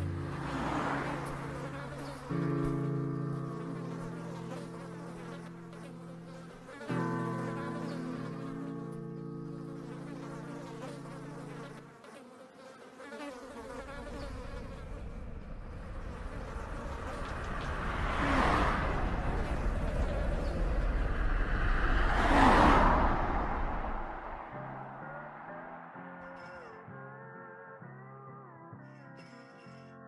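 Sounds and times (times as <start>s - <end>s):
flies buzzing: 0.0s - 27.6s, 28.9s - 29.9s
low rumble: 14.5s - 26.2s.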